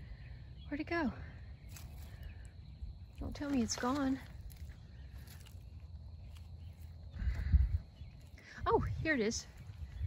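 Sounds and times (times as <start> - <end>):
footsteps on grass and leaves: 1.6 - 10.0.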